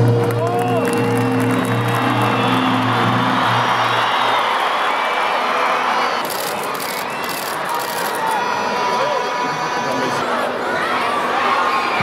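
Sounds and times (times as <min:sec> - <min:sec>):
crowd cheering and applauding: 0:00.0 - 0:12.0.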